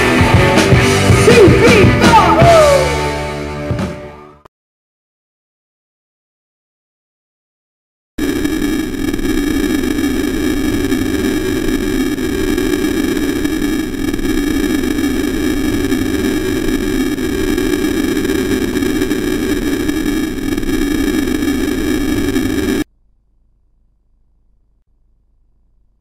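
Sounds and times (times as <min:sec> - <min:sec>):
electronic interference hiss: 0:08.2 - 0:22.9
steady high tones: 0:08.2 - 0:22.9.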